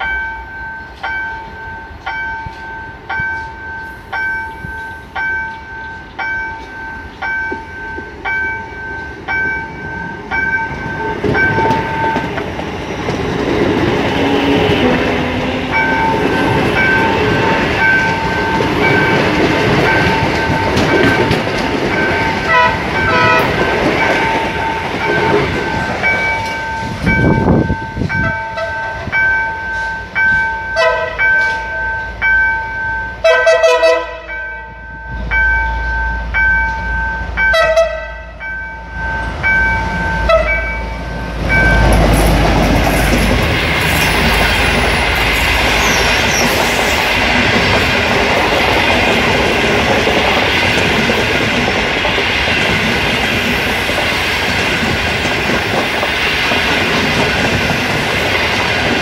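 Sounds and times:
train coaches rumbling past: 0.0 - 59.0
train running past: 0.0 - 59.0
train horn blasts: 22.4 - 23.6, 30.8 - 31.6, 33.2 - 34.5, 37.5 - 38.4, 40.2 - 40.8.

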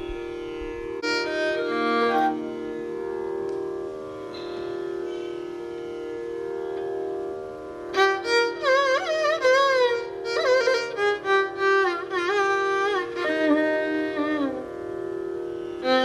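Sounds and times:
tanpura drone: 0.0 - 16.0
violin notes: 0.0 - 16.0.

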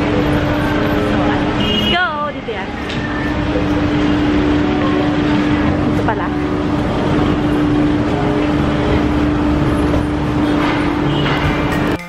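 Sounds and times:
people's voices: 0.0 - 10.7
traffic noise: 0.0 - 12.0
vehicle engines humming: 0.0 - 12.0.

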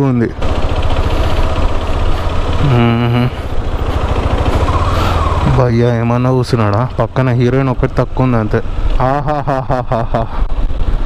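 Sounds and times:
motorcycle engine rumbling: 0.0 - 11.0
person speaking: 2.6 - 3.5, 5.4 - 9.4.

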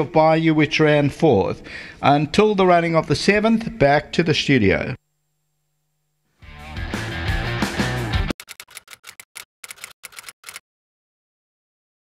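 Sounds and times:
typewriter key clicks: 8.3 - 10.6.

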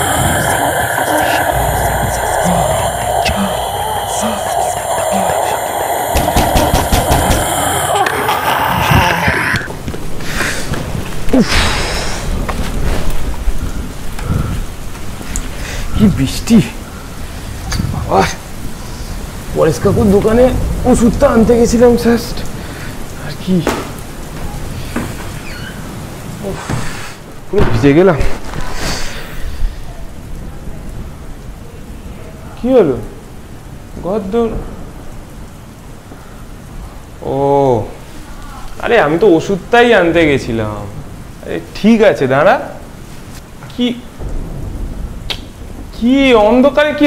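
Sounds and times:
deep rumble: 0.0 - 9.8
rain-like hiss: 0.0 - 47.0.

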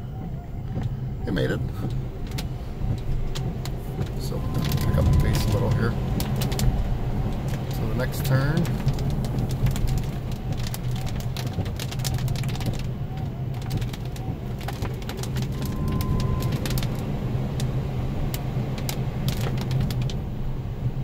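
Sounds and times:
rain ticking on car: 0.0 - 21.0
tyre and road noise: 0.0 - 21.0.

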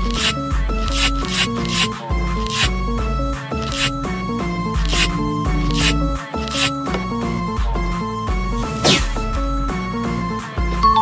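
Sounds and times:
bass line: 0.0 - 10.0
held synth notes: 2.8 - 8.8.

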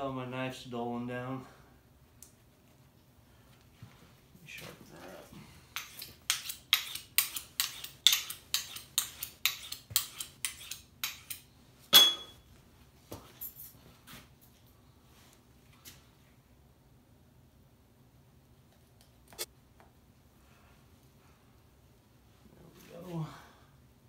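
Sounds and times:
knife blade on sharpener: 5.8 - 11.4
metal clink ringing: 11.9 - 12.4.

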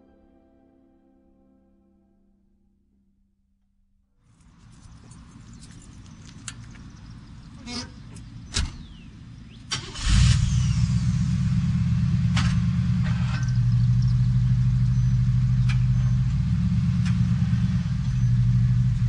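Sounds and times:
car engine starting and idling: 4.3 - 19.0
car door shutting: 7.7 - 9.1.

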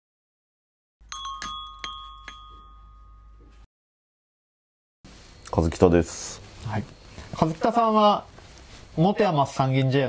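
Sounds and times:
bell-like chime: 1.0 - 3.7.

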